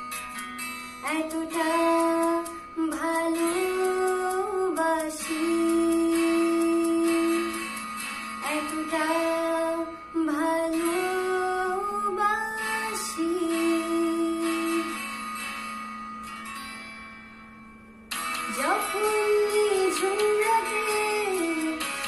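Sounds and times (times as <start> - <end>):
guitar accompaniment: 0.0 - 22.0
woman singing love song: 1.0 - 7.8, 8.4 - 15.2, 18.5 - 22.0.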